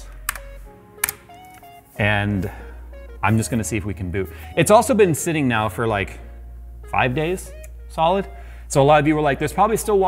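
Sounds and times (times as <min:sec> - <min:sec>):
background music: 0:00.0 - 0:10.0
sharp clicks: 0:00.2 - 0:01.3.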